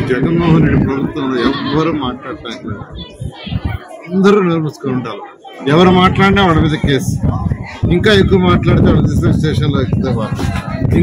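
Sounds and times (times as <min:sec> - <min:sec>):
man speaking loudly into microphones: 0:00.0 - 0:02.9, 0:04.1 - 0:11.0.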